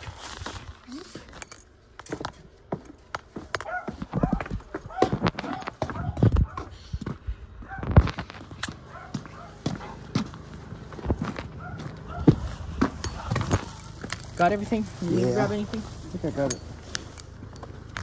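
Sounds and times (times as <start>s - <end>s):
footsteps on hard ground: 0.0s - 18.0s.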